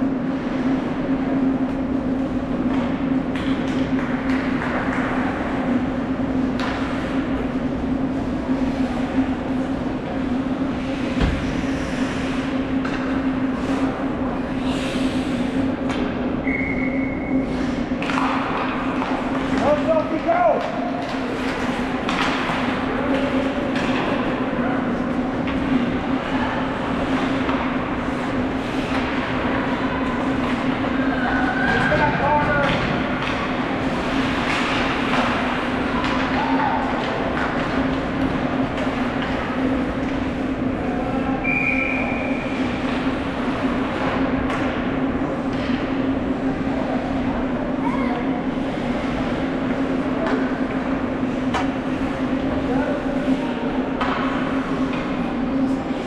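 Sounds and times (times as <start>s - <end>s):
steady low hum: 0.0s - 56.0s
sticks and puck clacking: 18.0s - 24.3s, 28.8s - 29.5s, 32.5s - 40.3s, 50.2s - 50.5s, 54.0s - 55.2s.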